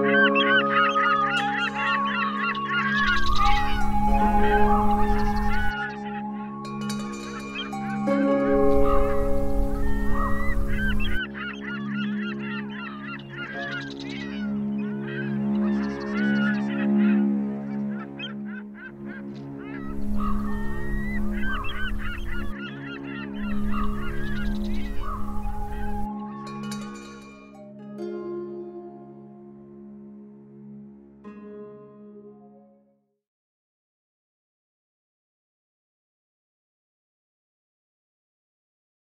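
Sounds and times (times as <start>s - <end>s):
wavering bird calls: 0.0s - 28.1s
ambient music with low tone: 0.0s - 33.1s.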